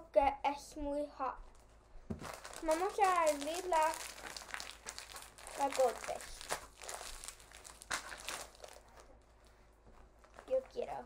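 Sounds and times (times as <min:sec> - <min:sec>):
plastic snack bag crinkling: 0:01.5 - 0:11.0.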